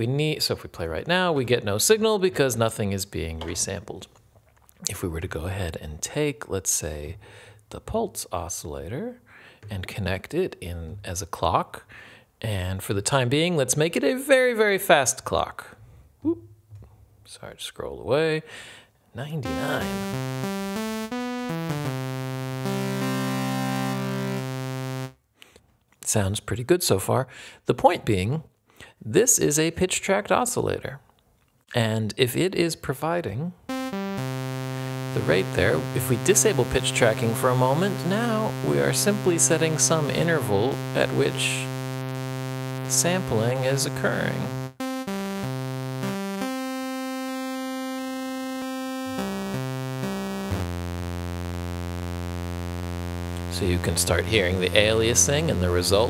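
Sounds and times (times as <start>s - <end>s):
held synthesizer chord: 19.4s - 25.2s, 33.7s - 56.0s
high aliasing tones: 19.4s - 25.2s, 33.7s - 56.0s.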